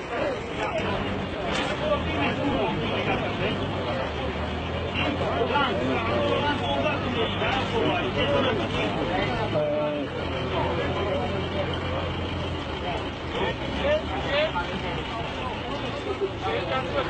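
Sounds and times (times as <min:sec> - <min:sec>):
forklift engine running: 0:00.0 - 0:17.0
men's voices: 0:00.0 - 0:17.0.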